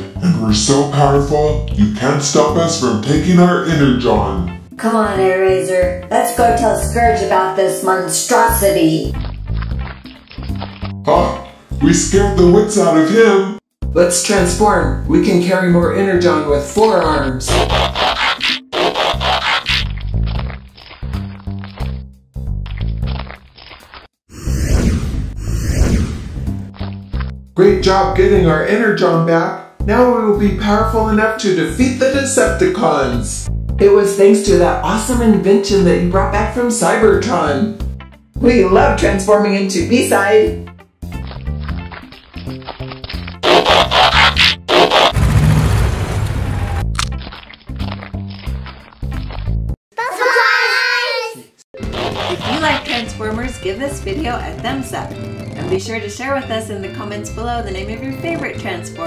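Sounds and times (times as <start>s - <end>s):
background music with bass: 0.0s - 7.4s, 8.4s - 13.1s, 13.8s - 23.2s, 25.2s - 29.0s, 29.7s - 49.8s
background music with steady beat: 13.8s - 20.0s
hissing whoosh effects: 24.3s - 26.6s
rushing noise bursts: 43.4s - 46.8s
low roar-like rumbling: 45.2s - 46.9s.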